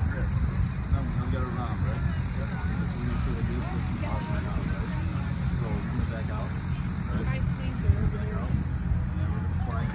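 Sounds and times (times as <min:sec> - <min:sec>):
people talking in background: 0:00.0 - 0:09.9
steady low rumble: 0:00.0 - 0:09.9.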